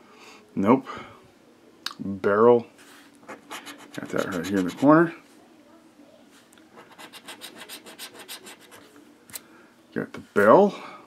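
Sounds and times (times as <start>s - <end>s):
scratching a scratch-off ticket: 3.3s - 5.1s, 6.8s - 8.9s.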